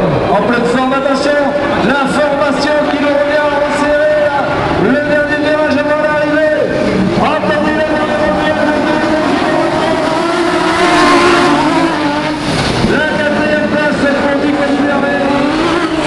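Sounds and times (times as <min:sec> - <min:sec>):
race car engines running hard: 0:00.0 - 0:16.0.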